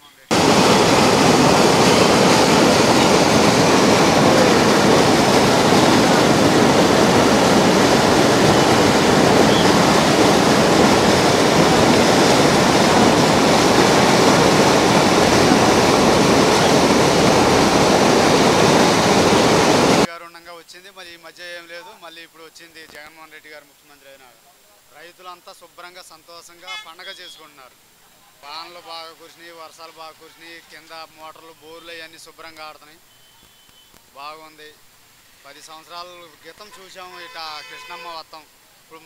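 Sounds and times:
turbulent rushing water: 0.3s - 20.1s.

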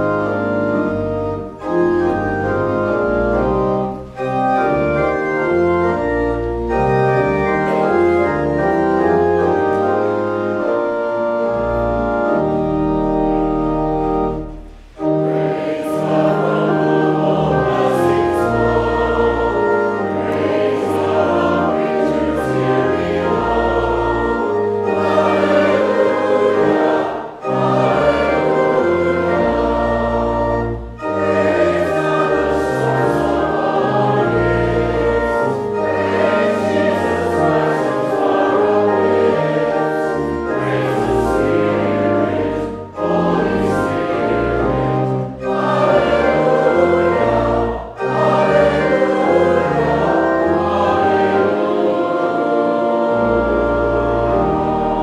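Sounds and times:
choir singing a hymn: 0.0s - 55.0s.

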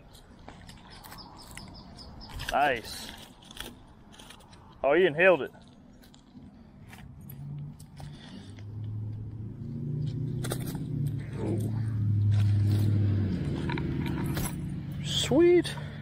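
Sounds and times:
handling clicks and rustles: 0.0s - 9.4s, 10.0s - 16.0s
vehicle engine hum: 0.0s - 16.0s.

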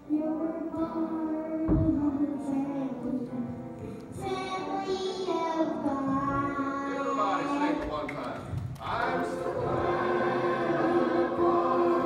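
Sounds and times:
voices singing a hymn: 8.8s - 12.0s.

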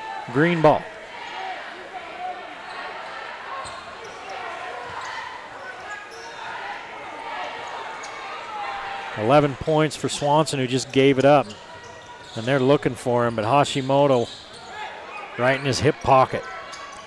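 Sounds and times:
crowd chatter echoing: 0.0s - 17.0s
sneakers squeaking: 0.3s - 8.9s, 9.5s - 17.0s.

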